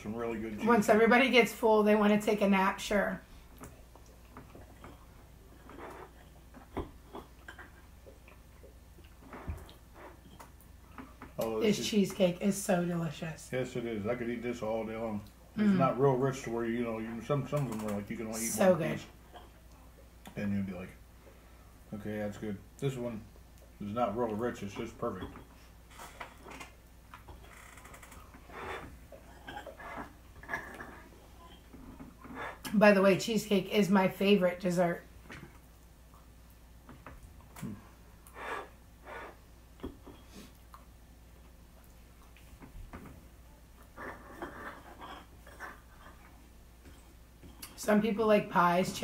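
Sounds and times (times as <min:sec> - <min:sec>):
soft chewing and mouth sounds: 0:03.2 - 0:11.6, 0:15.0 - 0:32.8, 0:35.1 - 0:47.8
person chewing food: 0:03.4 - 0:11.4, 0:35.3 - 0:42.7.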